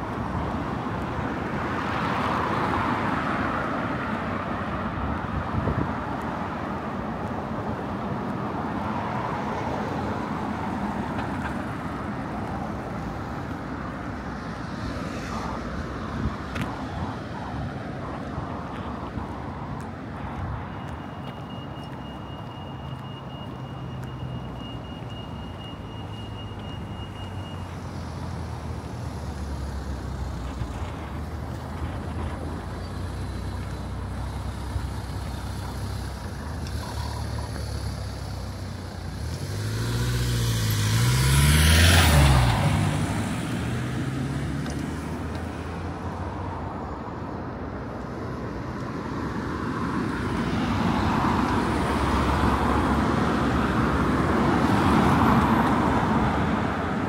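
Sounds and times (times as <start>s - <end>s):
tyre and road noise: 0.0s - 57.0s
vehicles driving past: 0.0s - 57.0s.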